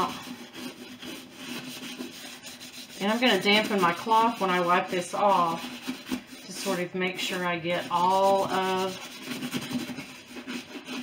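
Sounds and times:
brush scrubbing leather: 0.0 - 11.0.

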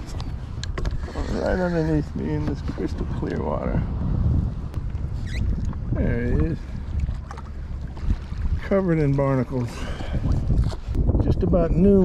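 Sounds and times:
water lapping at a kayak hull: 0.0 - 12.0
wind buffeting microphone: 0.0 - 12.0
short high squeak: 5.2 - 5.5.

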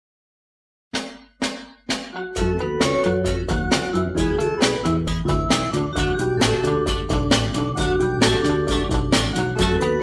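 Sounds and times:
sharp drum hits: 1.0 - 2.5
soul band playing: 2.2 - 10.0.

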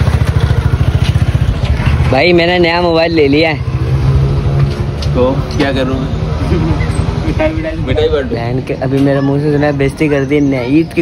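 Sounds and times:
engine idling: 0.0 - 3.3.

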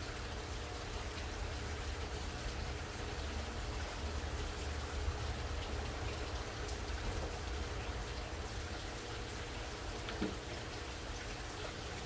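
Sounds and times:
water trickling and splashing: 0.0 - 12.0.

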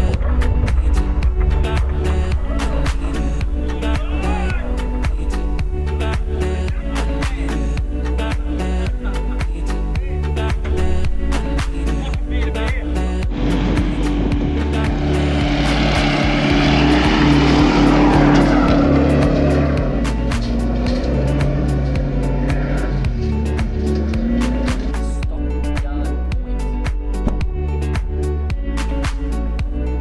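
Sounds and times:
engine labouring: 0.0 - 25.8
music with steady beat: 0.0 - 30.0.

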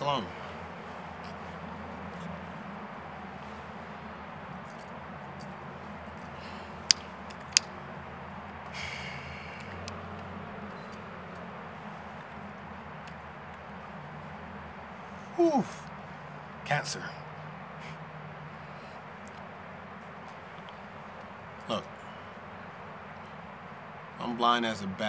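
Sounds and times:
low background hum: 0.0 - 25.0.

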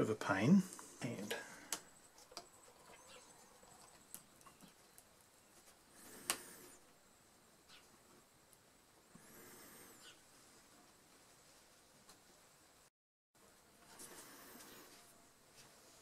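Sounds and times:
faint rustle: 9.1 - 12.6, 13.4 - 16.0.

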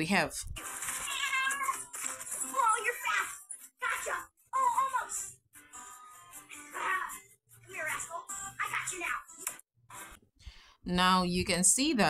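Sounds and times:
cat meowing: 1.0 - 1.8.

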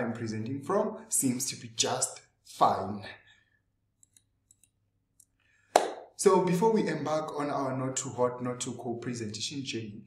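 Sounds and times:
man speaking: 0.0 - 3.3, 6.2 - 10.0.

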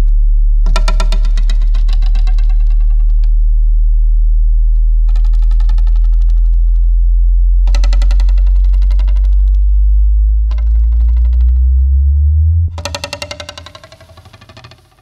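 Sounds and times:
loud low hum: 0.0 - 13.0
low tone rising in pitch: 0.0 - 13.2.

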